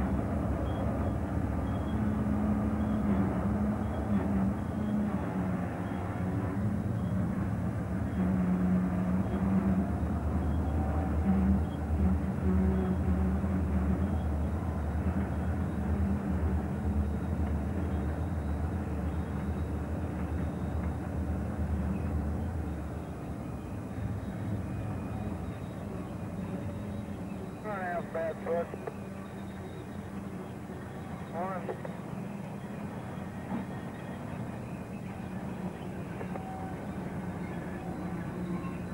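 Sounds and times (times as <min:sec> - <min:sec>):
locomotive engines droning: 0:00.0 - 0:38.9.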